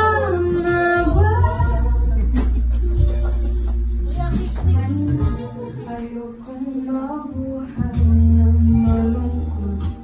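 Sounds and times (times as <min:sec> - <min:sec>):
instrumental backing music: 0:00.0 - 0:10.0.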